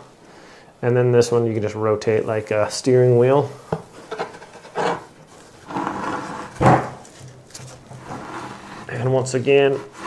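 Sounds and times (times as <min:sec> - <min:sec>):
board rubbing against scratching post: 0:04.2 - 0:07.1, 0:07.9 - 0:10.0
knock: 0:06.6 - 0:07.0.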